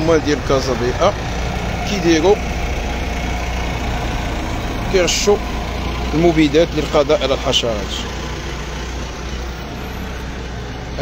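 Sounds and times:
truck engine drone: 0.0 - 11.0.

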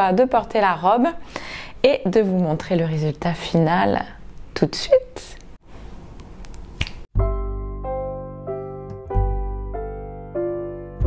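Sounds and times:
finger snap: 6.8 - 7.0
piano playing held chords: 7.2 - 11.0.

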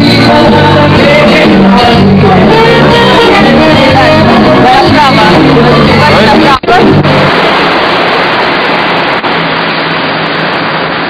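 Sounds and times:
rushing street traffic: 0.0 - 11.0.

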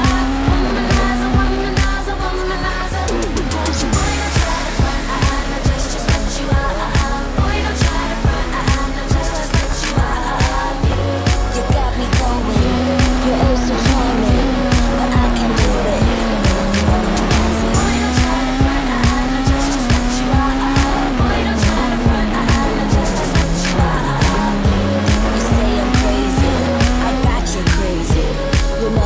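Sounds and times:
music with a steady beat: 0.0 - 29.0
rally car engine revving hard: 0.0 - 29.0.

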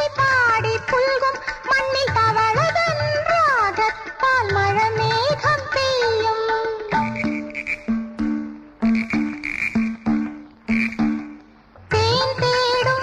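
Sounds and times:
frog-like croaks in music: 6.9 - 11.4.

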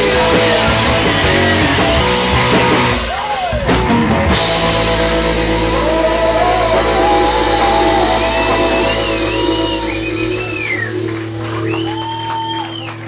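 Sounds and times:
bass and drums: 0.0 - 13.0
audience whistling and shouting: 2.9 - 3.9, 5.8 - 13.0
held guitar notes ringing: 4.4 - 12.2.

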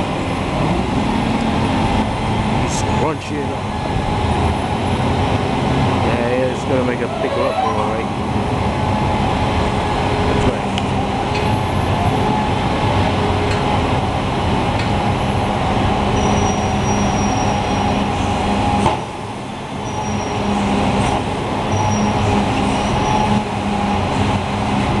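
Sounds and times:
garbage truck diesel engine: 0.0 - 25.0
hydraulics whining: 5.9 - 8.8
short high-pitched squeaks: 6.8 - 8.1.

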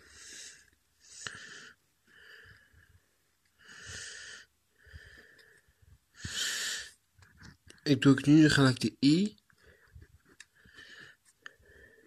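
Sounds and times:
person breathing: 0.0 - 7.0, 9.6 - 12.0.

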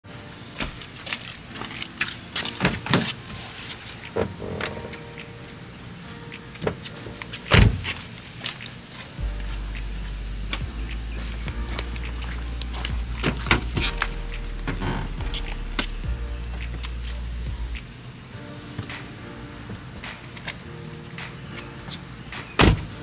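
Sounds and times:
keys jangling: 0.6 - 4.2, 6.8 - 14.8.

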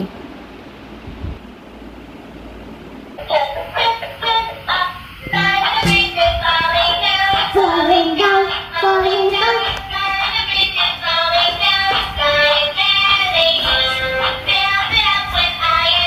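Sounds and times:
song music: 3.2 - 16.0
child-like voice singing: 5.3 - 16.0.

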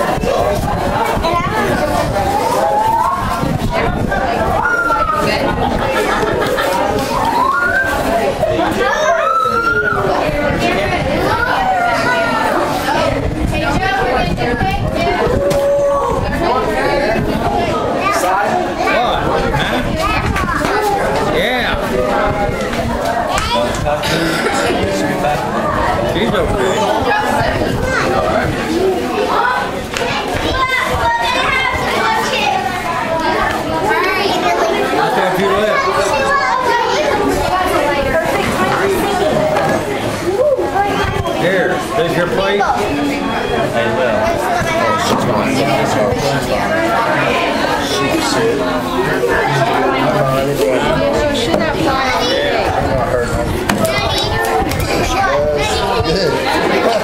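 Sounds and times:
chatter of children and adults: 0.0 - 57.0.

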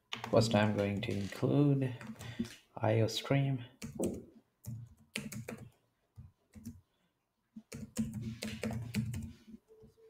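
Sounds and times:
keyboard typing: 3.8 - 6.8, 7.6 - 10.0.

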